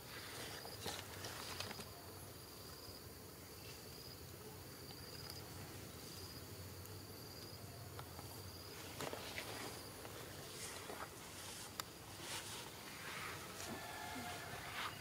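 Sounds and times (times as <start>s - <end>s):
insect buzzing: 0.0s - 15.0s
outdoor background noise: 0.0s - 15.0s.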